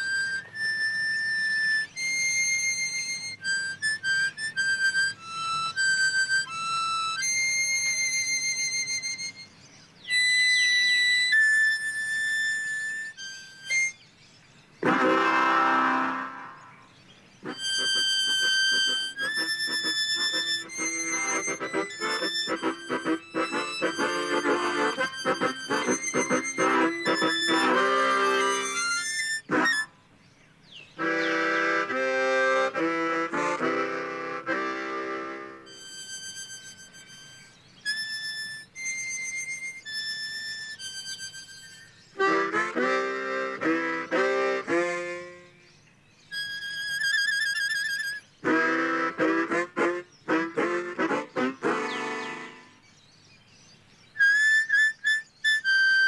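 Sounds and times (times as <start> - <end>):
harmonicas playing: 14.8 - 29.9, 31.0 - 45.5.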